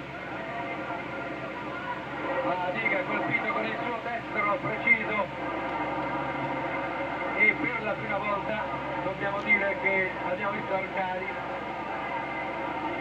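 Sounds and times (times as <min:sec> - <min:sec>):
crowd shouting: 0:00.0 - 0:13.0
steady television hum: 0:00.0 - 0:13.0.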